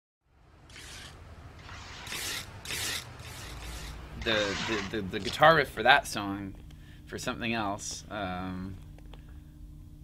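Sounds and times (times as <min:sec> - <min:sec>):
squeegee scraping across screen: 0:00.7 - 0:05.4.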